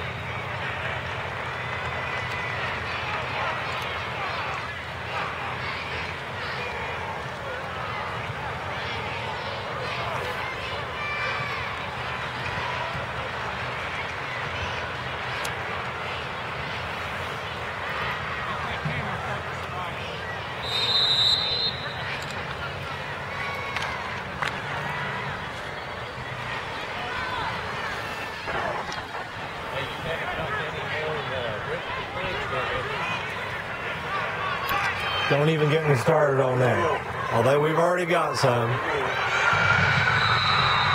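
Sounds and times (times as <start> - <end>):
crowd chatter: 0.0 - 40.9
shrill whistle blast: 20.6 - 22.0, 39.1 - 40.9.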